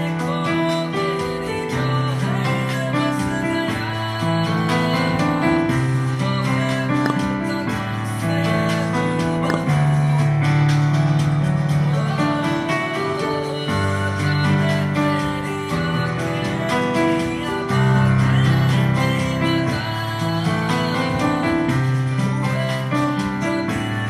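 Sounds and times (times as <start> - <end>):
digital piano arpeggiated chords: 0.0 - 24.0.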